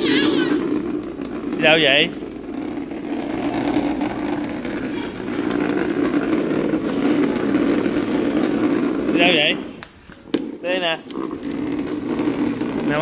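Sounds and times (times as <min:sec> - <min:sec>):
plastic chair scraping on floor: 0:00.0 - 0:13.0.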